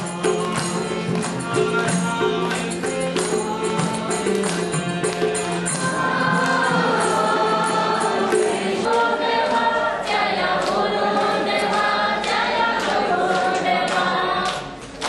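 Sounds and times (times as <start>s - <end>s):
hand percussion beat: 0.0s - 9.1s
group singing a chant: 0.0s - 15.0s.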